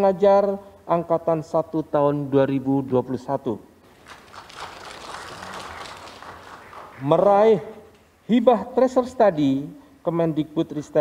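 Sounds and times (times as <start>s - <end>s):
audience applause: 4.0s - 7.3s.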